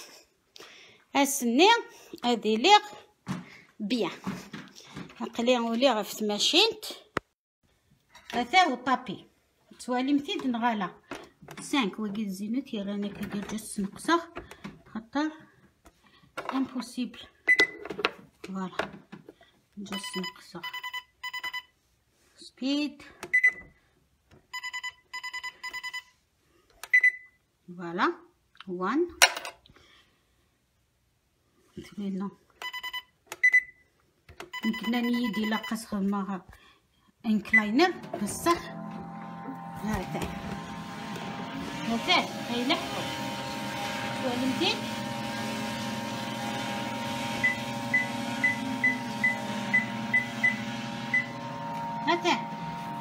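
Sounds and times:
treadmill console beeping: 17.5 - 17.8, 20.0 - 21.7, 23.3 - 23.8, 24.5 - 26.1, 32.6 - 33.8, 34.4 - 35.8, 37.5 - 42.5, 44.8 - 53.0.

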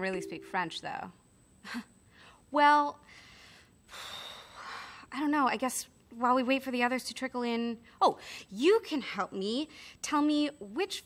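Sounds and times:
woman breathing out: 3.1 - 5.1.

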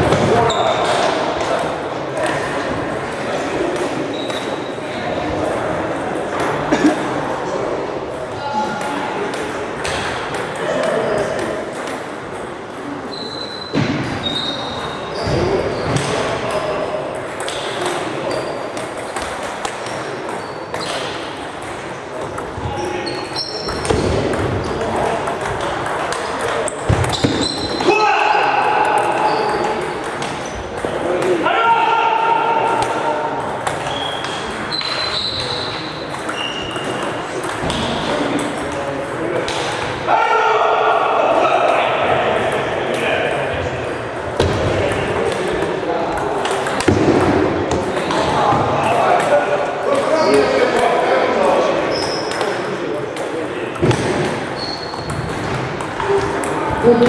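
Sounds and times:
table tennis balls clicking: 17.1 - 22.6, 23.6 - 27.8, 35.7 - 39.9.

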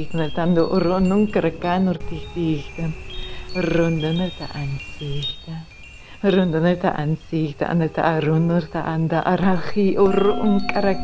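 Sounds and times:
chimes ringing: 0.0 - 7.2, 10.0 - 11.0.

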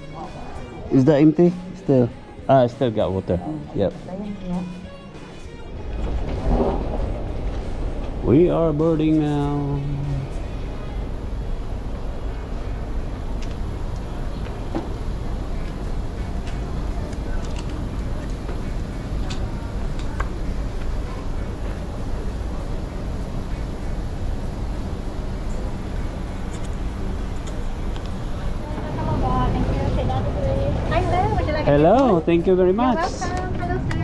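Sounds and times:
faint high whine: 0.0 - 33.9
voices: 0.0 - 34.0
low rumble and hum: 5.8 - 34.0.

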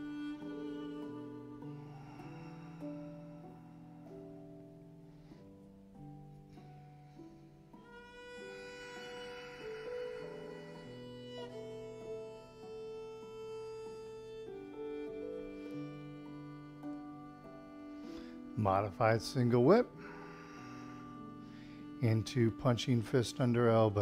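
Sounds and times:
soft slow instrumental music: 0.0 - 24.0.

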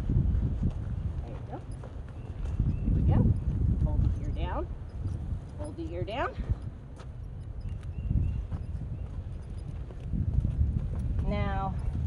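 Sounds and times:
horse hooves on soft dirt: 0.0 - 12.0.

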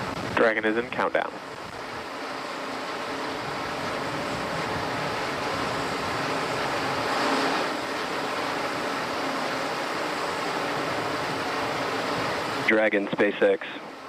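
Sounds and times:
steady rushing noise: 0.0 - 14.0.

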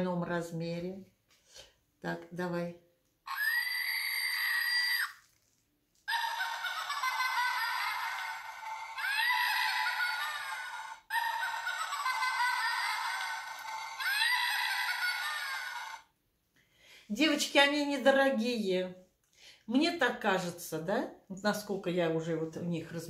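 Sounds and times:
toy shrill squeal: 3.3 - 5.3, 6.1 - 16.1
tinny recorded laughing voice: 6.1 - 16.0.

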